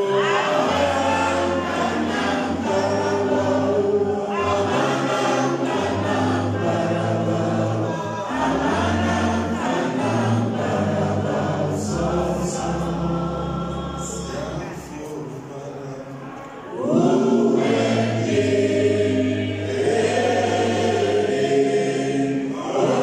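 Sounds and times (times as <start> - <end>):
group singing gospel: 0.0 - 15.1, 16.5 - 23.0.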